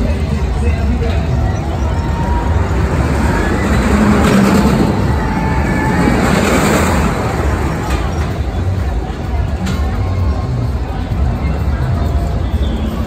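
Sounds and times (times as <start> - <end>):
roller coaster rushing rumble: 0.0 - 13.0.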